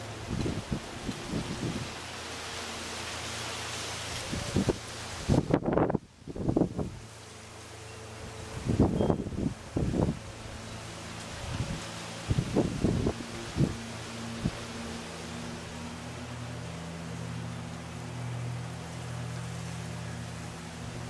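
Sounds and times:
distant motor hum: 0.0s - 21.0s
faint outdoor hiss: 0.0s - 21.0s.

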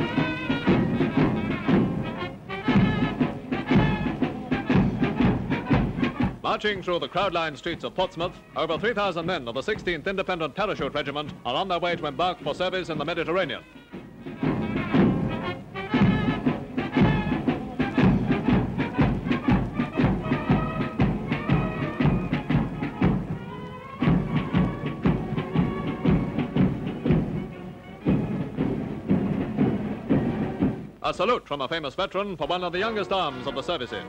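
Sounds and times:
military band playing a march: 0.0s - 31.0s, 32.8s - 34.0s.

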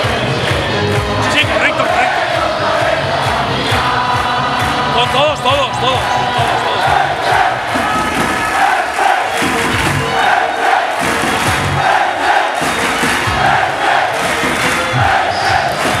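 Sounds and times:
crowd chanting in unison: 0.0s - 16.0s
deep drum thumps: 6.4s - 8.7s.

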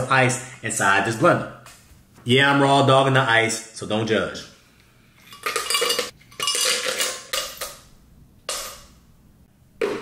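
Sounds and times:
ice cubes clinking in blender jar: 5.3s - 7.8s.

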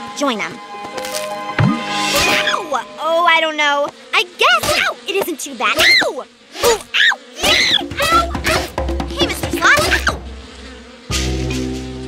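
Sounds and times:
bees buzzing: 0.0s - 12.0s
person saying ow: 4.6s - 10.2s.

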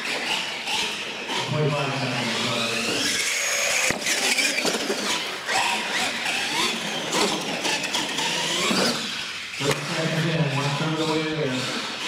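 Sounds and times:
electric motors whining: 0.0s - 12.0s.

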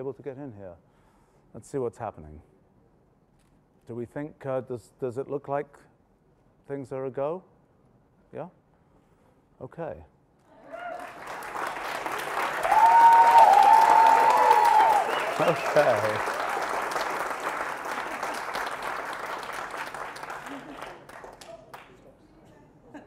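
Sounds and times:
whoops: 10.5s - 11.3s, 12.5s - 16.2s
crowd applauding: 10.6s - 22.1s.

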